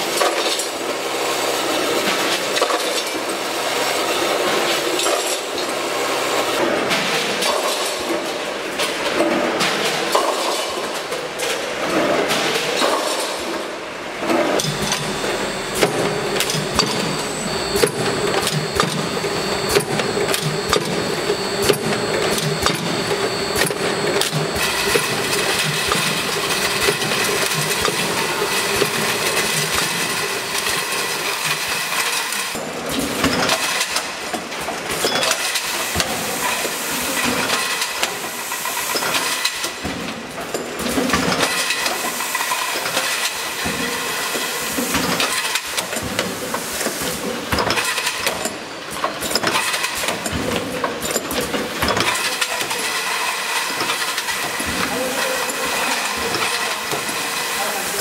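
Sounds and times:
machine mechanical hum: 0.0 - 58.0
sharp mechanical clicks and knocks: 14.2 - 36.6, 44.8 - 55.0.

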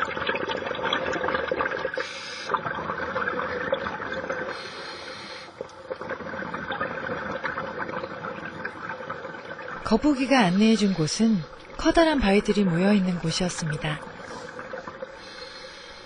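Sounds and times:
underwater bubbling and crackling: 0.0 - 16.0.

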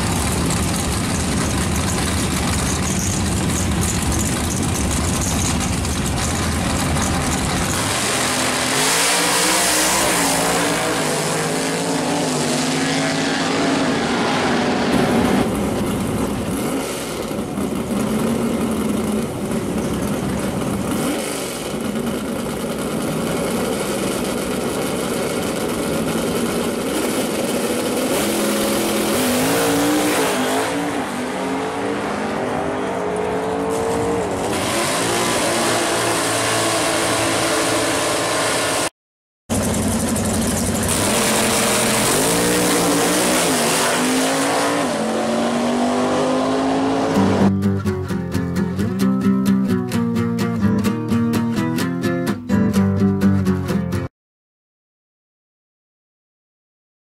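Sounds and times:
drag car engines accelerating: 0.0 - 38.9, 39.5 - 47.5
engines revving: 0.0 - 38.9, 39.5 - 47.5.

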